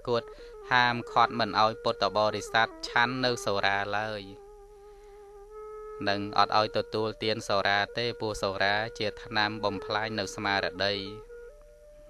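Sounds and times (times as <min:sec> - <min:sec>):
person speaking: 0:00.0 - 0:04.4, 0:06.0 - 0:11.2
faint steady hum: 0:00.0 - 0:12.0.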